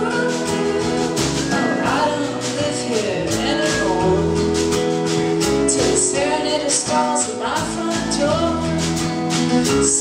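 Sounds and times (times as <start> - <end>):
people singing: 0.0 - 4.8, 5.7 - 8.8
acoustic guitar strumming: 0.0 - 10.0.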